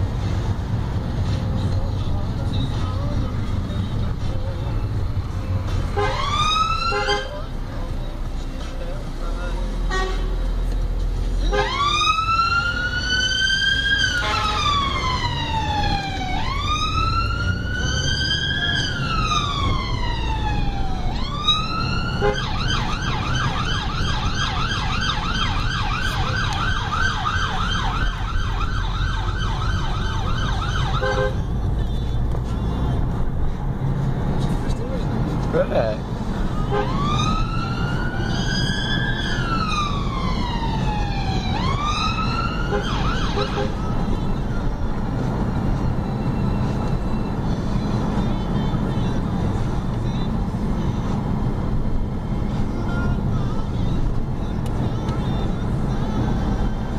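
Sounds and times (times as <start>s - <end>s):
engine and road rumble: 0.0s - 56.9s
emergency vehicle siren: 6.0s - 7.4s, 11.5s - 31.4s, 36.5s - 48.0s.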